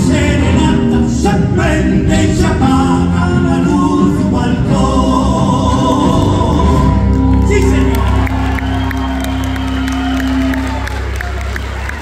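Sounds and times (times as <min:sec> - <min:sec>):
audience clapping: 0:07.0 - 0:12.0
audience cheering and whooping: 0:07.1 - 0:12.0.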